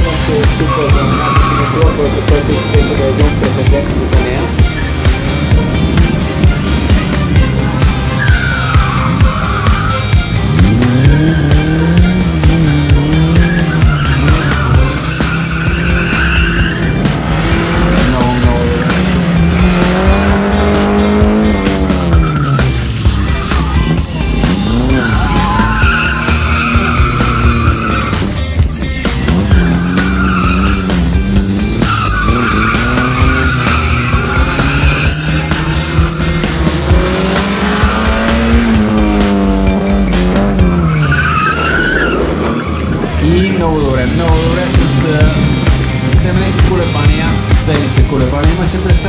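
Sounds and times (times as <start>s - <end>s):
tyres squealing: 0.0s - 46.0s
car engine revving: 0.0s - 49.0s.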